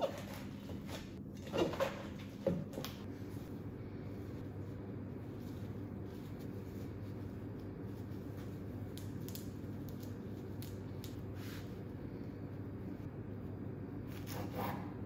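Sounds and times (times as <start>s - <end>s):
low room hum: 0.0s - 15.0s.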